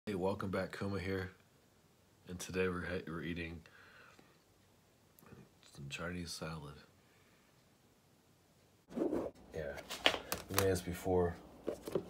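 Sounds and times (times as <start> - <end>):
man breathing faintly: 3.6 - 4.5.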